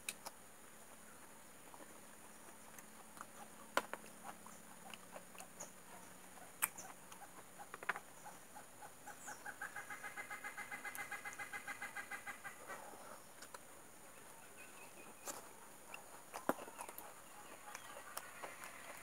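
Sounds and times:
eating soft fruit: 0:00.0 - 0:19.0
animal clucking calls: 0:02.2 - 0:12.9, 0:14.2 - 0:19.0.

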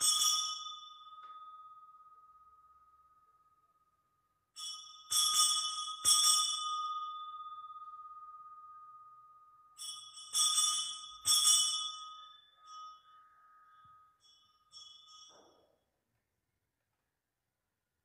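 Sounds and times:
altar bells ringing: 0:00.0 - 0:16.1.

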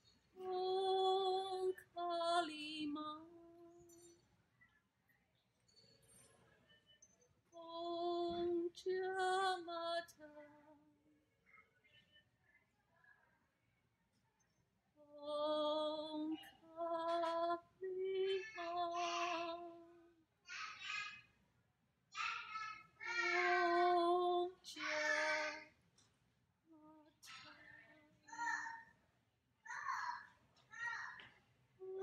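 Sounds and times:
woman singing chant: 0:00.4 - 0:04.2, 0:07.5 - 0:11.1, 0:15.0 - 0:20.2, 0:23.1 - 0:25.7, 0:26.7 - 0:28.1.

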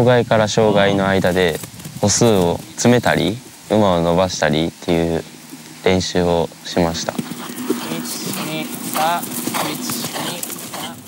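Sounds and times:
horse hoofbeats on grass: 0:00.6 - 0:03.8, 0:04.5 - 0:11.0.

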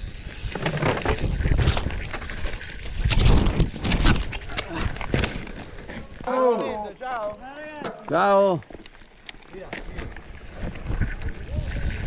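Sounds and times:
wind on microphone: 0:00.0 - 0:05.0, 0:10.5 - 0:12.0
bike tyres clattering on dirt trail: 0:00.0 - 0:12.0.

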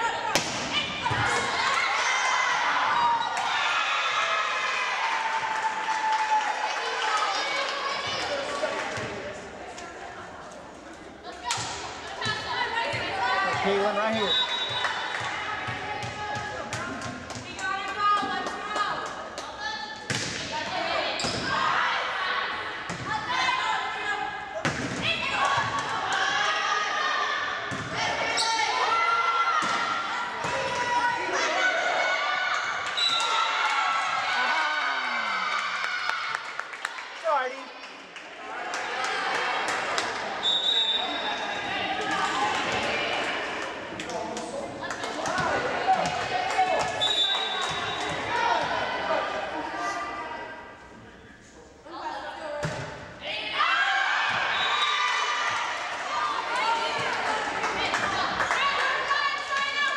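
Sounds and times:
volleyball hits: 0:00.3 - 0:01.7, 0:20.0 - 0:21.7, 0:24.6 - 0:26.4, 0:29.6 - 0:31.0
players and spectators shouting: 0:25.0 - 0:36.3, 0:53.2 - 0:59.9.

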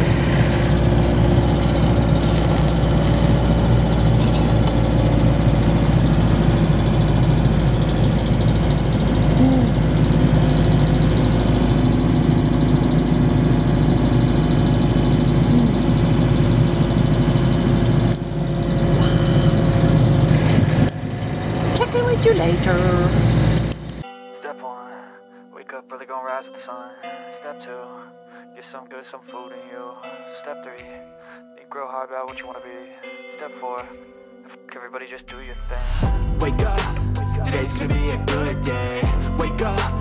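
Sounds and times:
van engine and road noise: 0:00.0 - 0:24.0, 0:36.0 - 0:40.0.

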